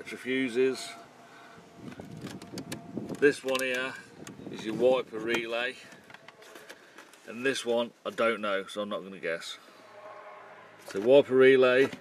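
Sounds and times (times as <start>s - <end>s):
handling clicks and knocks: 2.0s - 7.2s.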